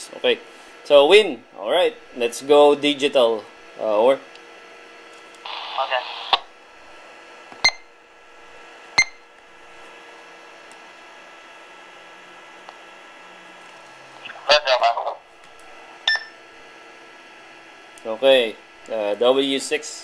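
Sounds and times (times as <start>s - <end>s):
steady electrical hum: 0.0s - 20.0s
radio key beeps: 16.1s - 16.4s.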